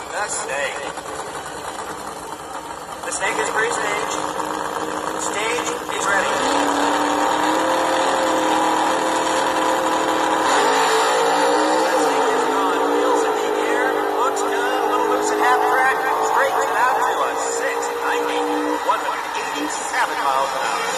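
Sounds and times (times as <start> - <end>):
toy drag racing engine drone: 0.0 - 20.9.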